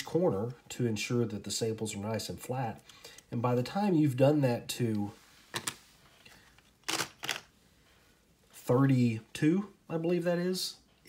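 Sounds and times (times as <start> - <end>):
cardboard coin holders clicking: 6.8 - 7.5.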